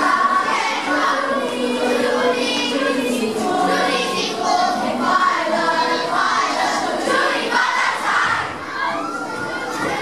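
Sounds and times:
children shouting and cheering: 0:00.0 - 0:10.0.

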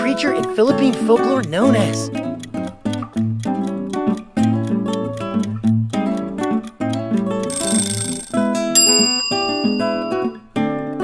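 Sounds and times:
plucked acoustic guitar music: 0:00.0 - 0:07.5
bright bell-like chime: 0:07.5 - 0:10.4.

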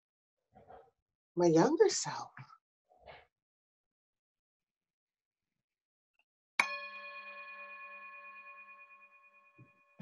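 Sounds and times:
bell struck with wooden striker: 0:06.6 - 0:10.0.

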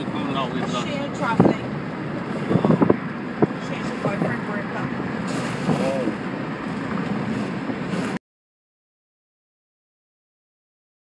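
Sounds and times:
car road and engine noise: 0:00.0 - 0:08.2
muffled talk: 0:05.7 - 0:06.2.

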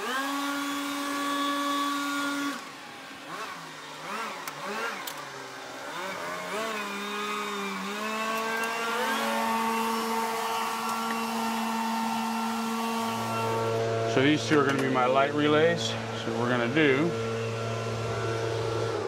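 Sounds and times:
motor whining: 0:00.0 - 0:19.0.

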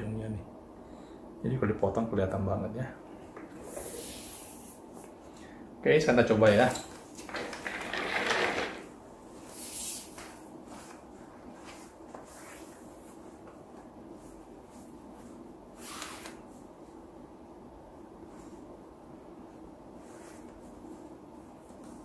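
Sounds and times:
clothing rustling: 0:06.9 - 0:17.2, 0:18.1 - 0:22.0.

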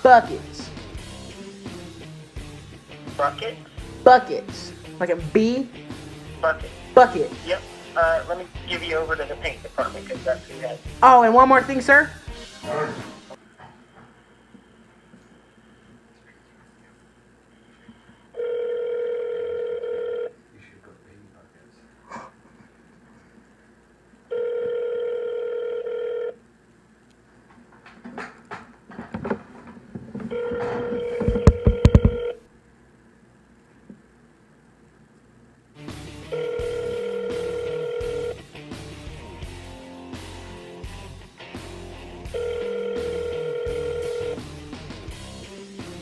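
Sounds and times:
telephone hold music: 0:00.0 - 0:13.4, 0:30.2 - 0:32.4, 0:35.8 - 0:46.0
telephone ringing tone: 0:18.3 - 0:20.4, 0:24.3 - 0:26.4, 0:30.3 - 0:32.4, 0:36.3 - 0:38.5, 0:42.3 - 0:44.4.

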